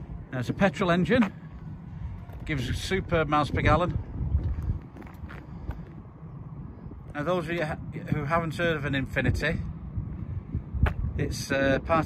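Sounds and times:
footsteps on tarmac: 0.0s - 12.0s
wind rumble on microphone: 0.0s - 12.0s.

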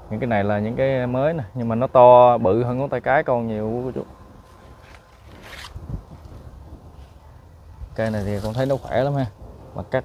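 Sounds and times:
rustling scrape: 4.4s - 7.2s, 8.0s - 9.1s.

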